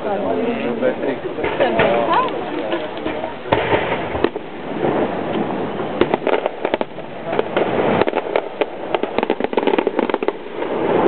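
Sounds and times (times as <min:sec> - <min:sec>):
fireworks popping and crackling: 0:00.7 - 0:11.0.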